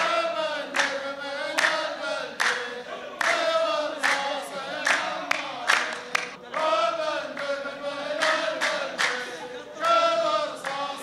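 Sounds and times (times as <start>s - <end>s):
unison hand claps: 0.0s - 6.8s, 8.2s - 10.0s, 10.6s - 10.9s
men chanting in chorus: 0.0s - 11.0s.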